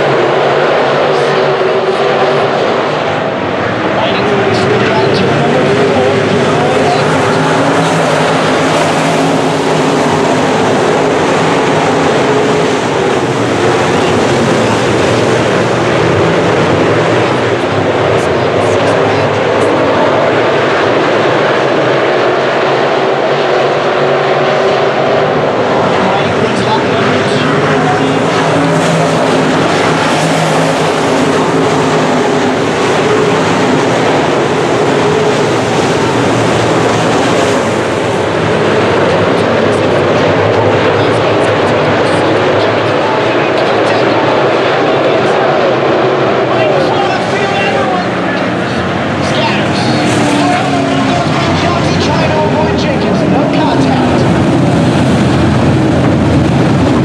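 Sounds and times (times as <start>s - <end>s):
race car engines droning: 0.0s - 57.0s.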